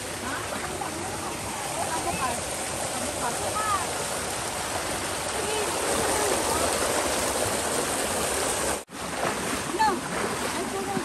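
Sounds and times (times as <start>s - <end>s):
stream rushing over boulders: 0.0s - 11.0s.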